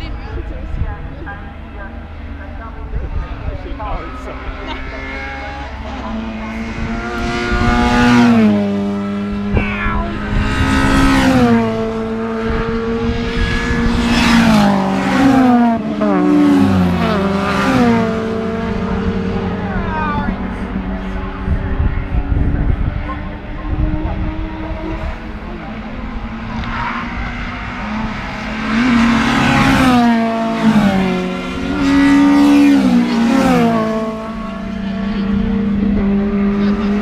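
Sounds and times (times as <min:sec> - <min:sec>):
race cars passing at speed: 0:00.0 - 0:37.0.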